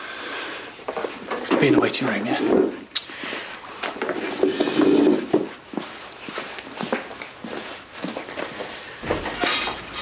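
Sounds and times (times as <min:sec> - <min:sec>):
footsteps: 0:00.8 - 0:10.0.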